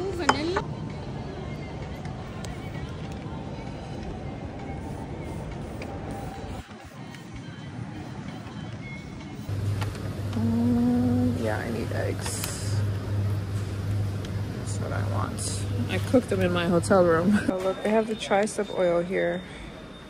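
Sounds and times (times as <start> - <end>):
music: 0.0 - 20.0.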